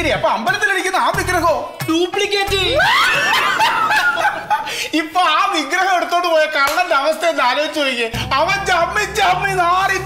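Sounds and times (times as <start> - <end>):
men laughing loudly: 2.7 - 4.9.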